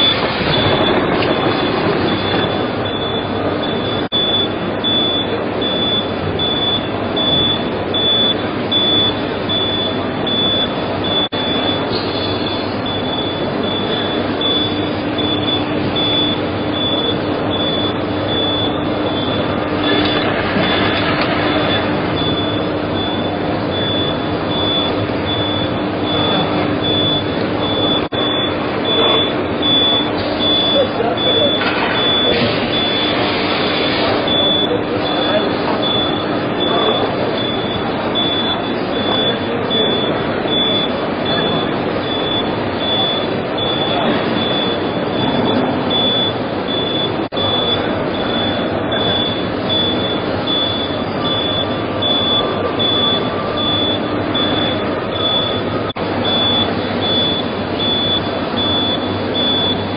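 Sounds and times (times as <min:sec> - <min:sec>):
high-pitched beep: 0:00.0 - 0:33.2, 0:34.3 - 0:59.9
machinery running: 0:00.0 - 0:59.9
murmur of voices: 0:06.6 - 0:59.9.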